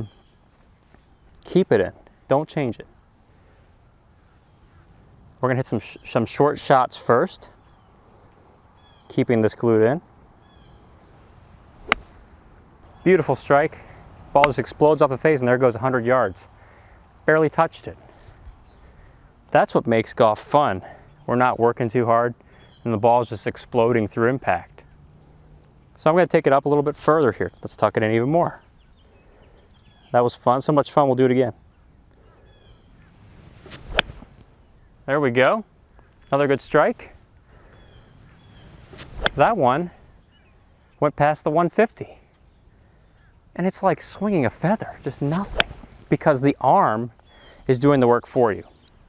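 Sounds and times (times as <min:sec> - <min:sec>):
golf club swish: 0:11.6 - 0:12.6, 0:33.1 - 0:34.6, 0:38.3 - 0:39.6, 0:45.1 - 0:46.1
golf club striking ball: 0:11.8 - 0:12.3, 0:33.7 - 0:34.3, 0:38.9 - 0:39.6, 0:45.4 - 0:45.9.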